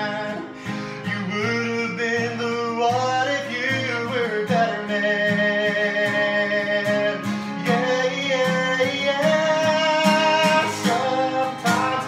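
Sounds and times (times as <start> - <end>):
acoustic guitar strumming: 0.0 - 12.0
man singing sliding notes: 0.0 - 12.0.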